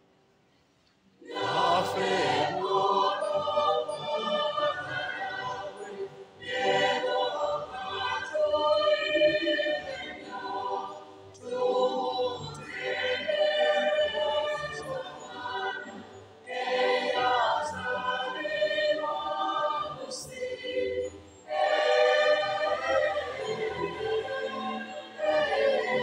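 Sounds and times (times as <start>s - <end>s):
choir singing a hymn: 1.2s - 26.0s.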